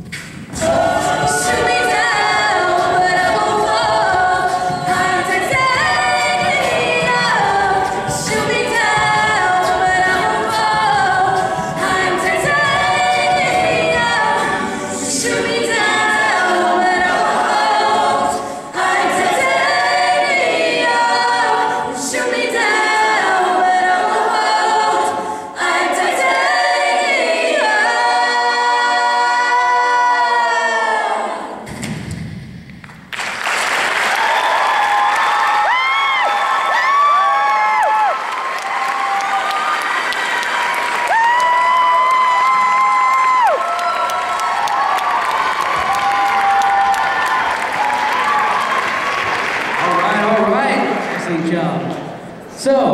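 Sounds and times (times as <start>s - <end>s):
a cappella group singing: 0.0s - 32.3s.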